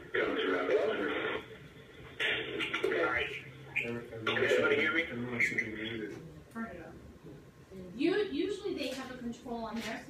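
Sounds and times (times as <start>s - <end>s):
person speaking over speakerphone: 2.2s - 6.2s.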